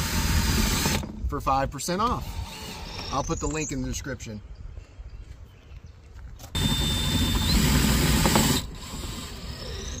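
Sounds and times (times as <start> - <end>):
cordless drill whining: 0.0 - 1.2, 2.0 - 3.4, 6.5 - 10.0.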